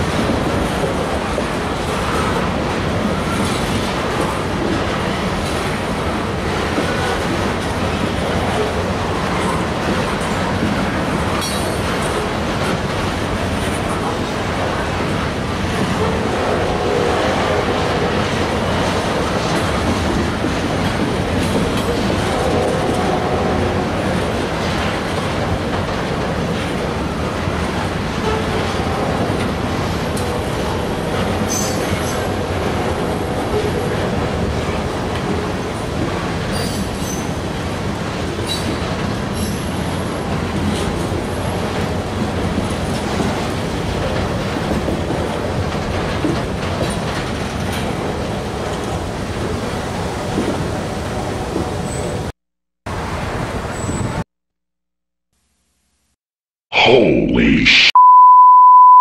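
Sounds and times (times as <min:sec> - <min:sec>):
freight train cars rumbling: 0:00.0 - 0:52.3.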